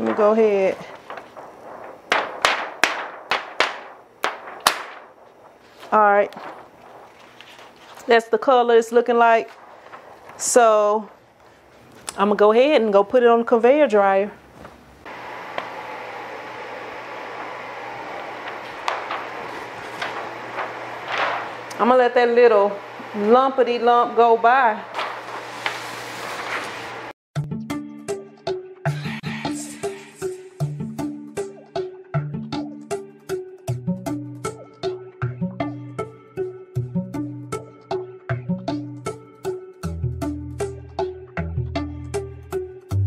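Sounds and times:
plastic film sheet snapping: 0:00.0 - 0:08.1, 0:09.5 - 0:10.6, 0:17.6 - 0:21.8, 0:24.9 - 0:26.9
conveyor dryer whirring: 0:15.1 - 0:27.1.

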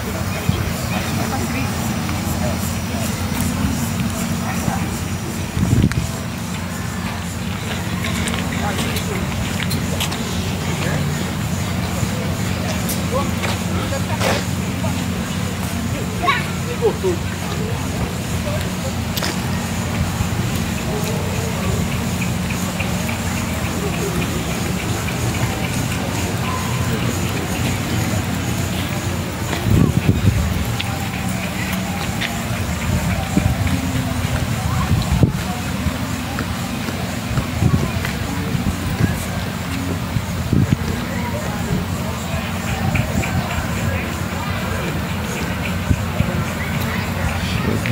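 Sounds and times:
faint voices: 0:00.0 - 0:47.9
low rumble of road traffic: 0:00.0 - 0:47.9.

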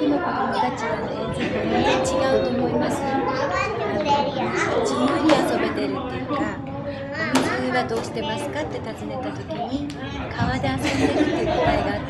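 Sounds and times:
chatter of voices in hall: 0:00.0 - 0:12.0.

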